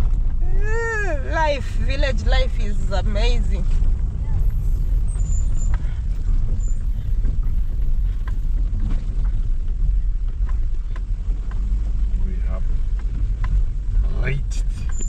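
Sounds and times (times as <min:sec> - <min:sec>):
car engine and tyre rumble: 0:00.0 - 0:15.0.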